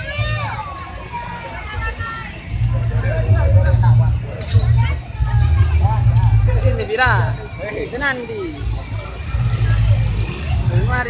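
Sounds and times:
crowd chatter: 0.0s - 11.0s
motorcycle engines rumbling: 0.0s - 11.0s.

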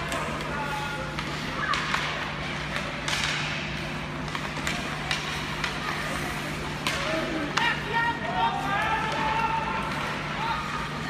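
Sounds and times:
skates scraping on ice: 0.0s - 10.9s
hockey sticks and puck clacking: 0.0s - 11.0s.

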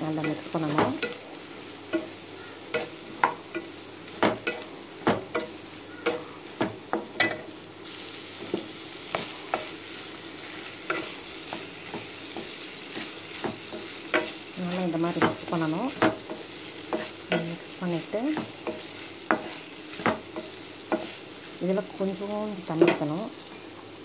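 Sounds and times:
food sizzling in a pan: 0.0s - 24.0s.

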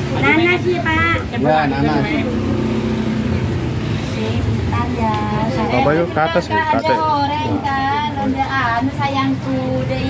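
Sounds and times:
vehicle engine rumbling: 0.0s - 6.2s.

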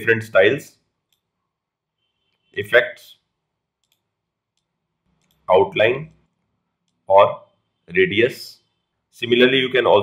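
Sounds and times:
faint computer mouse clicks: 1.1s - 1.3s, 3.8s - 5.5s.

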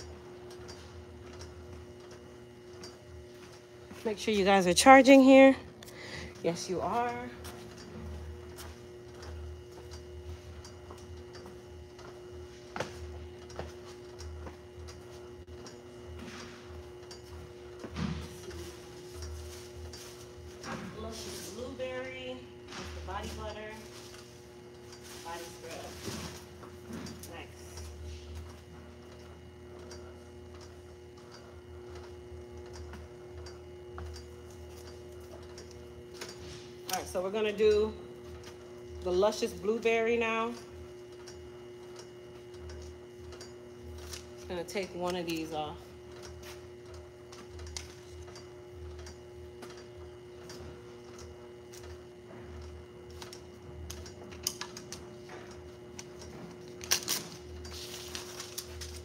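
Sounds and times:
electrical hum: 0.0s - 59.0s.

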